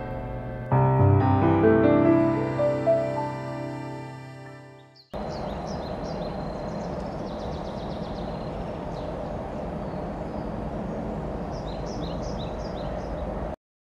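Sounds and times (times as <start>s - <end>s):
piano music: 0.0s - 5.1s
small birds chirping: 4.7s - 13.5s
outdoor background noise: 5.0s - 13.6s.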